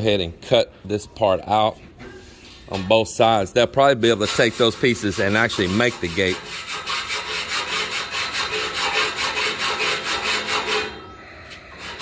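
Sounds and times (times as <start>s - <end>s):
saw rasping through metal tube: 3.8s - 12.0s.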